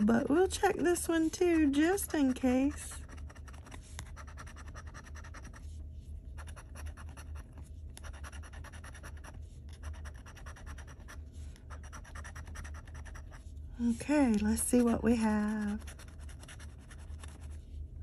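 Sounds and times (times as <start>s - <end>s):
steady low hum: 0.0s - 18.0s
scraping scratch-off ticket: 0.2s - 5.6s, 11.7s - 17.5s.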